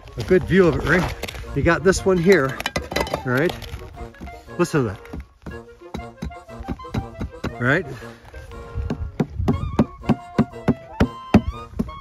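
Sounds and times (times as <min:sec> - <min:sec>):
hand tapping on hollow rock: 0:02.0 - 0:07.9, 0:08.8 - 0:12.0.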